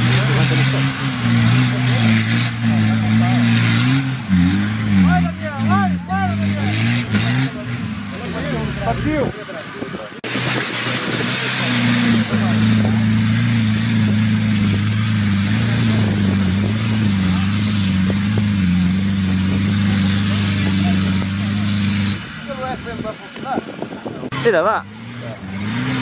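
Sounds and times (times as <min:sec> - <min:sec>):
car engine at high revs: 0:00.0 - 0:26.0.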